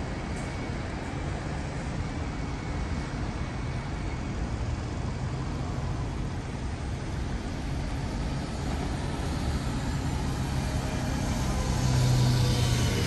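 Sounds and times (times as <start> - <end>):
tyres hissing on wet road: 0.0 - 13.0
vehicle engines running: 0.0 - 13.0.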